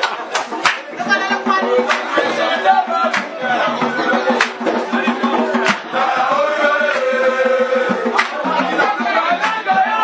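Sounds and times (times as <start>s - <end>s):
sharp drum strikes: 0.0s - 6.1s, 6.8s - 10.0s
chanted vocal line: 0.9s - 10.0s.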